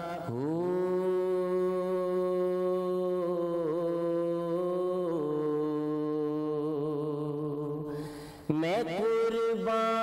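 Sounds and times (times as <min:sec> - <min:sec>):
man singing devotional verse: 0:00.0 - 0:10.0.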